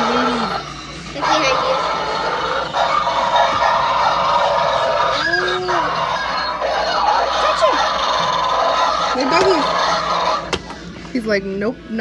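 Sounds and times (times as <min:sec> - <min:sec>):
recorded growls and snarls: 0:00.0 - 0:10.5.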